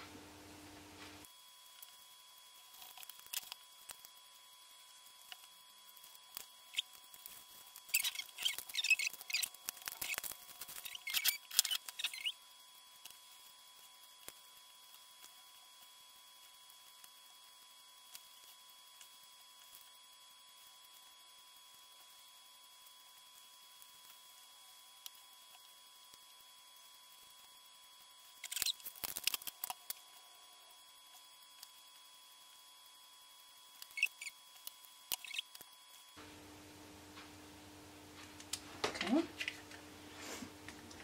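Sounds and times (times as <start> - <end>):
plastic bag crinkling and rattling: 6.7 - 12.3.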